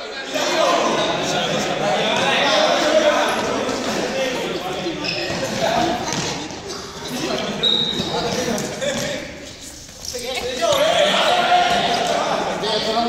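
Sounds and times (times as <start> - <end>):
students calling and chattering: 0.0 - 13.0.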